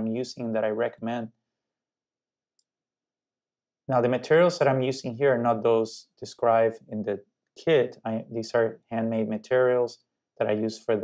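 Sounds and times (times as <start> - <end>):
man speaking: 0.0 - 1.3, 3.9 - 11.0.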